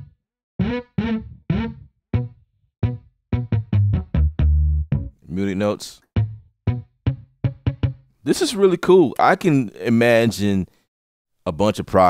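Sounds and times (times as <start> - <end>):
muted electric bass plucks: 0.0 - 5.2, 6.2 - 8.1.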